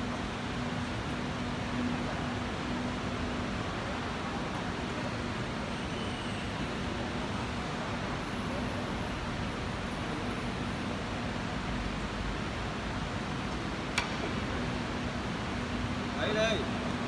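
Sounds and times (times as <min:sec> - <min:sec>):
continuous hiss: 0:06.5 - 0:17.0.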